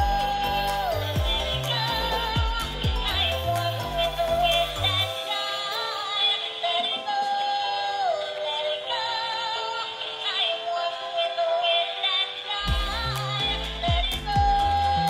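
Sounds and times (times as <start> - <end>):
deep bass: 0.0 - 5.0, 12.7 - 15.0
synthetic singing voice: 0.0 - 15.0.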